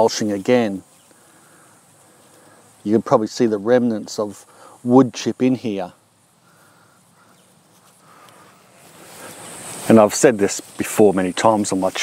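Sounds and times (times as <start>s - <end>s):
man speaking: 0.0s - 0.9s, 2.8s - 6.0s, 9.8s - 12.0s
faint insect buzzing: 0.0s - 12.0s.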